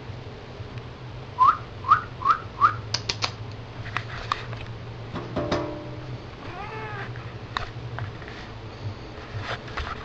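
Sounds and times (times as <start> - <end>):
cat meowing: 6.4 - 7.2.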